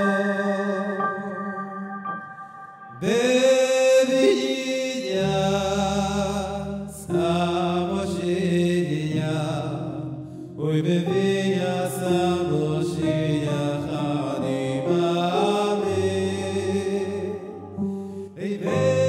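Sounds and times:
man singing into microphone: 0:00.0 - 0:01.8, 0:03.0 - 0:17.6, 0:18.4 - 0:19.0
electronic keyboard: 0:00.0 - 0:19.0.

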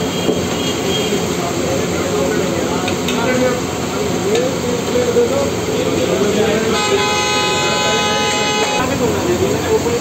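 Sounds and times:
street noise: 0:00.0 - 0:10.0
vehicle horn held note: 0:06.7 - 0:08.9.

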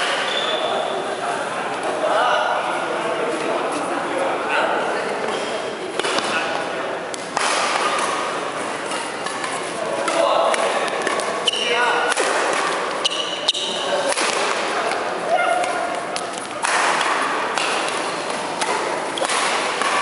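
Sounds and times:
shoe squeaks on wooden court: 0:00.2 - 0:00.8, 0:11.4 - 0:12.0, 0:13.0 - 0:14.0
racket striking shuttlecock: 0:07.1 - 0:15.0, 0:15.6 - 0:20.0.

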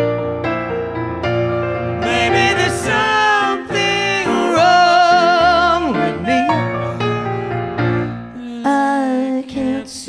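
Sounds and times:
piano accompaniment: 0:00.0 - 0:09.8
woman and man singing duet: 0:02.0 - 0:07.0, 0:08.4 - 0:10.0.

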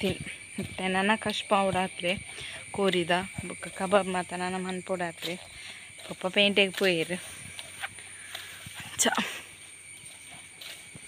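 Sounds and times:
woman speaking: 0:00.0 - 0:07.3, 0:08.8 - 0:09.5.

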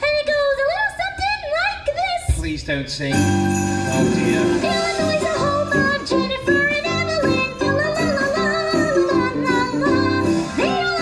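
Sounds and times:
upbeat instrumental backing: 0:03.1 - 0:11.0.

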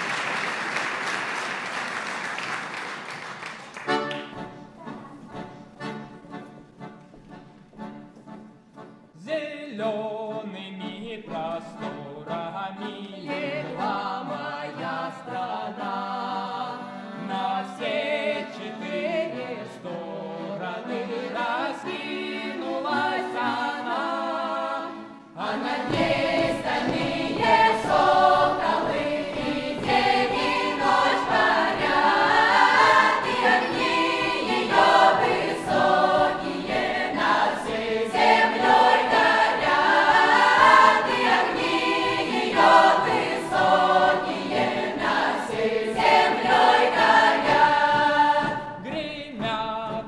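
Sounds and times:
youth choir singing folk song: 0:11.3 - 0:50.0
sharp percussion beats: 0:25.9 - 0:50.0.

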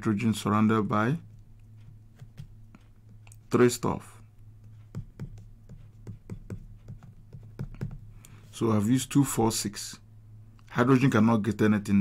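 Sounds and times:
steady low hum: 0:00.0 - 0:12.0
stylus tapping on screen: 0:00.9 - 0:03.7, 0:04.4 - 0:08.4.

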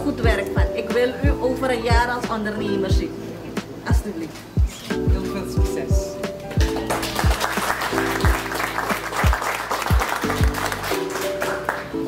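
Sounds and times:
background music with slow beat: 0:00.0 - 0:12.0
people applauding: 0:06.6 - 0:12.0.

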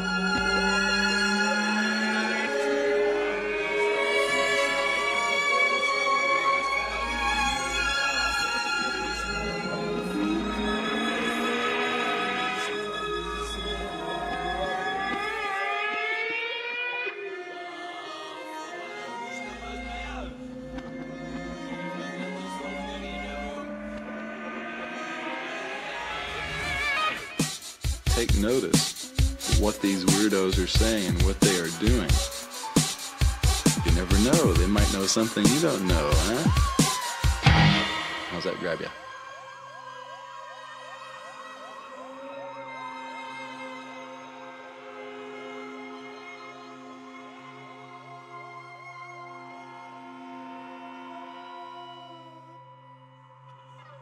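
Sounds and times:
siren-like rising tone: 0:00.0 - 0:05.6, 0:06.8 - 0:17.4, 0:20.4 - 0:27.4, 0:33.3 - 0:44.6
psychedelic instrumental music: 0:00.0 - 0:17.5, 0:19.6 - 0:39.4
electronic siren-like warble: 0:37.4 - 0:41.4.

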